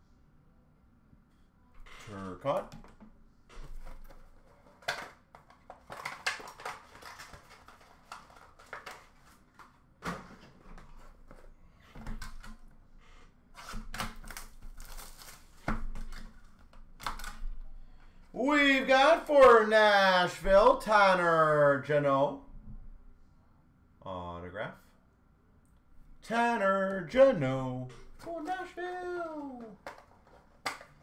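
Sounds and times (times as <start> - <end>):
plastic cases clicking and knocking: 2.6 - 11.4, 29.6 - 31.0.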